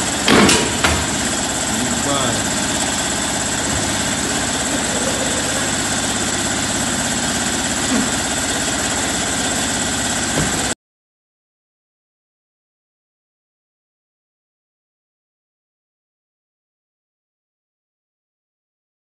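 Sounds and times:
steady mechanical drone: 0.0s - 10.8s.

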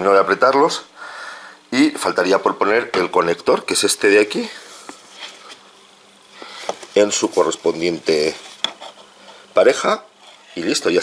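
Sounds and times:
low electrical buzz: 0.0s - 11.0s.

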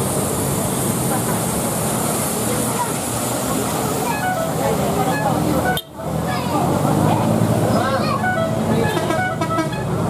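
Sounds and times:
car engines humming: 0.0s - 10.0s
people's voices: 0.8s - 9.5s.

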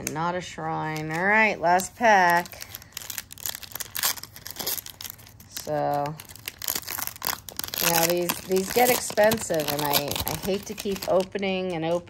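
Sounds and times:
foil wrapper tearing and crinkling: 0.8s - 12.0s.

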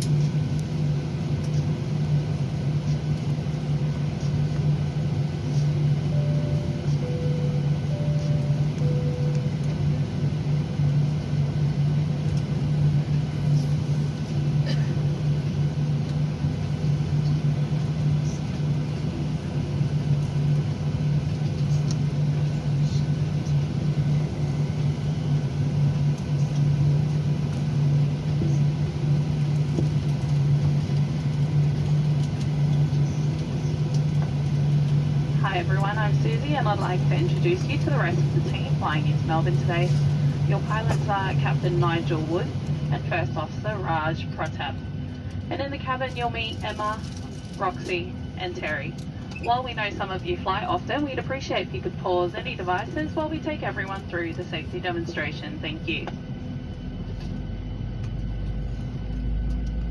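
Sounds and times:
airplane cabin hum: 0.0s - 59.9s
two-tone cabin chime: 6.0s - 10.0s.

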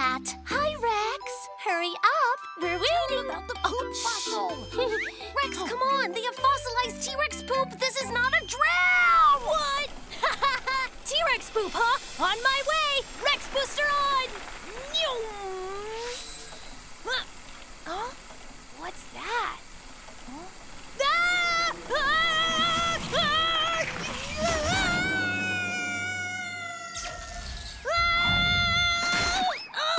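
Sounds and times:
boy yelling: 21.0s - 27.0s
cartoon voices exclaiming: 21.0s - 29.9s.

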